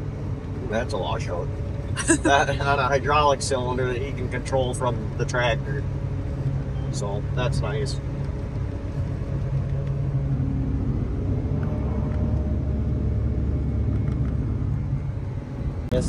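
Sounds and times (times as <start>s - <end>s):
forage harvester drone: 0.0s - 16.0s.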